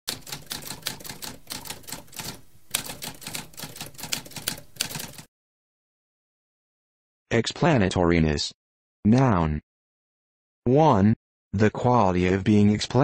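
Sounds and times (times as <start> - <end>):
manual typewriter keystrokes: 0.1 - 5.3.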